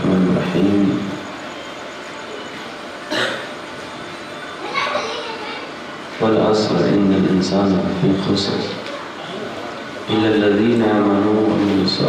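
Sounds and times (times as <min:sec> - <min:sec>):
man speaking over loudspeaker: 0:00.0 - 0:01.3, 0:06.2 - 0:08.9, 0:10.0 - 0:12.0
crowd chatter: 0:00.0 - 0:12.0.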